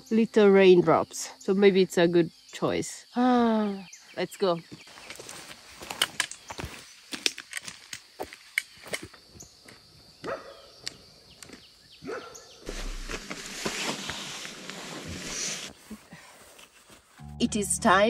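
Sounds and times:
footsteps on gravel: 0:04.7 - 0:09.8.

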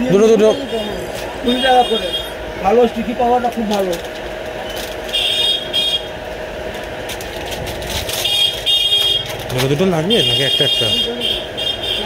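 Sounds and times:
road traffic: 0:00.0 - 0:12.0
rapid high vehicle horn beeps: 0:00.4 - 0:02.6, 0:04.6 - 0:06.2, 0:08.2 - 0:09.4, 0:10.1 - 0:12.0.

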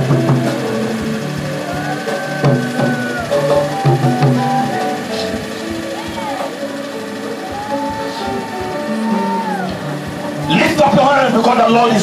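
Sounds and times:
long held high note: 0:00.0 - 0:10.5
drum strokes: 0:00.0 - 0:12.0
keyboard chords: 0:00.0 - 0:12.0.

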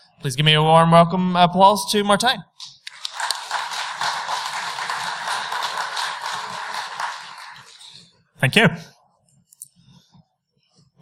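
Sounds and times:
audience applauding: 0:02.8 - 0:08.1.

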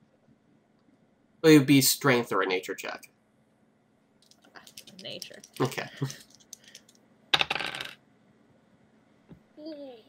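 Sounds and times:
dice rattling: 0:04.2 - 0:08.0.

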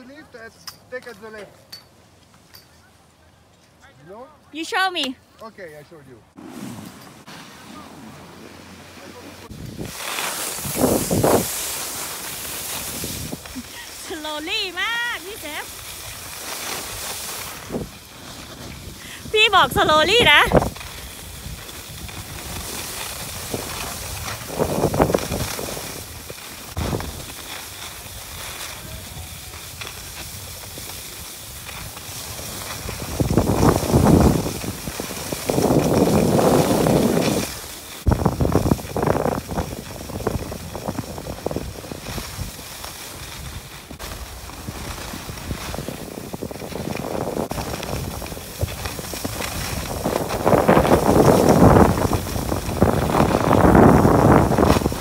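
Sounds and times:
skis scraping over snow: 0:04.0 - 0:55.0
wind buffeting microphone: 0:07.1 - 0:11.8, 0:17.4 - 0:27.3, 0:28.4 - 0:55.0.

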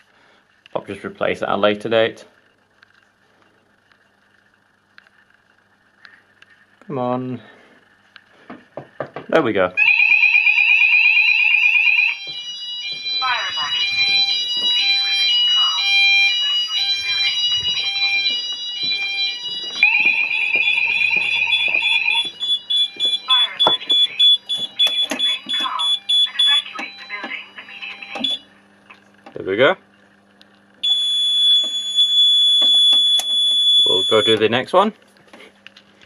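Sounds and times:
alternating stepped-tone alarm: 0:09.8 - 0:28.5, 0:30.8 - 0:34.4
loud high-pitched alarm tone: 0:09.8 - 0:28.5, 0:30.8 - 0:34.4
recorded voice message: 0:13.2 - 0:18.4, 0:23.1 - 0:28.2, 0:33.9 - 0:34.7.

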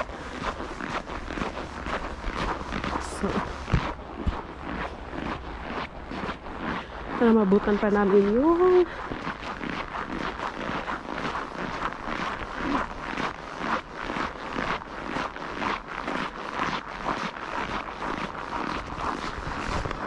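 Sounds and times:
footsteps crunching on frozen snow: 0:00.0 - 0:20.0.

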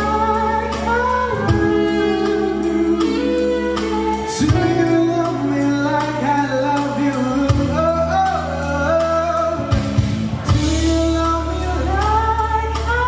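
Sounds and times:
live band with guitar: 0:00.0 - 0:13.0
man singing pop ballad: 0:00.0 - 0:13.0.

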